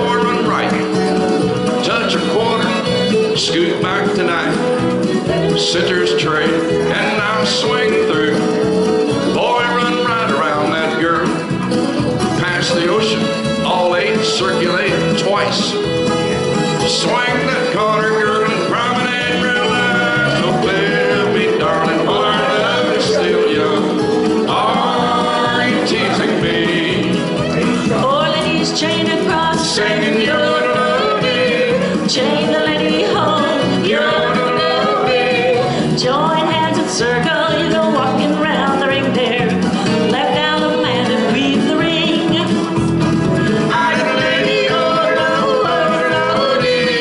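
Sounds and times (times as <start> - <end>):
country backing track: 0.0 - 47.0
man and woman singing: 1.8 - 8.6, 9.2 - 11.4, 12.3 - 15.8, 16.8 - 42.7, 43.5 - 47.0.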